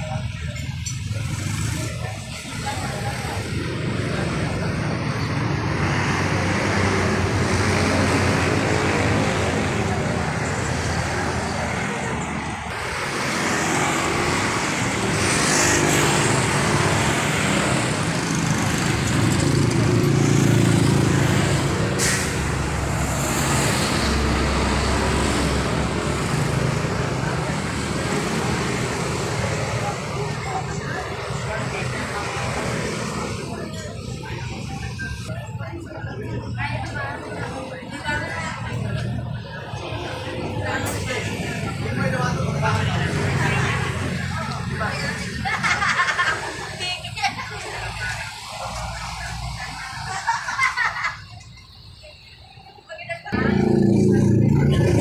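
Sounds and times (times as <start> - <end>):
cars passing: 0.0 - 55.0
people's voices: 0.0 - 55.0.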